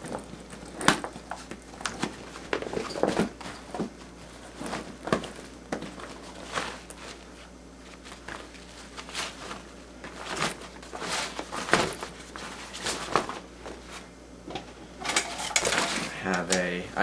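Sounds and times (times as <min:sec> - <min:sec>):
rummaging through backpack: 0:00.0 - 0:14.1, 0:15.0 - 0:16.2.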